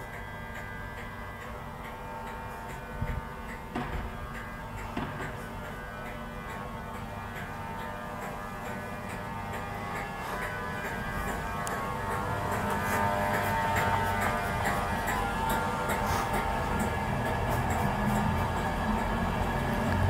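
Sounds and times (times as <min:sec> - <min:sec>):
train electrical whine: 0:00.0 - 0:20.0
train wheels knocking: 0:00.0 - 0:20.0
low train rumble: 0:00.1 - 0:20.0.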